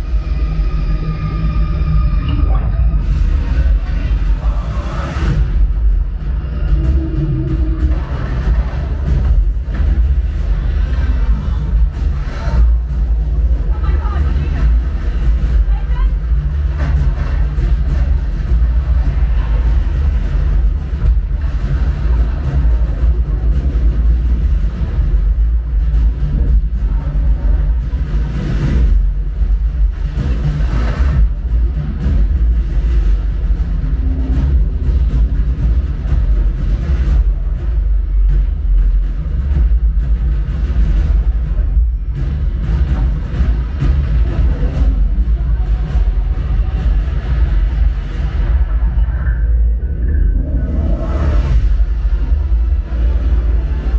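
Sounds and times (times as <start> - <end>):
film music and effects: 0.0 - 53.9
heavy deep bass: 0.0 - 53.9.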